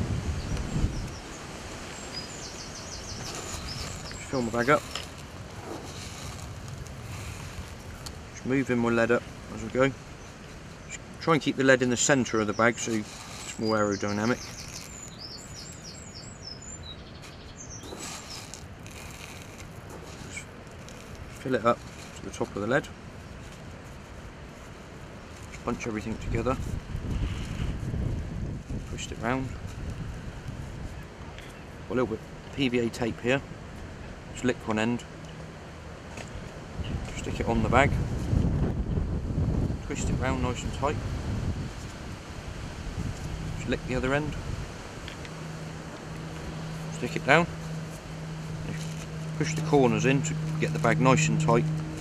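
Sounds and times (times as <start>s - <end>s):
even hiss: 0.0s - 28.1s
outdoor background noise: 0.0s - 52.0s
low rumble: 44.3s - 52.0s.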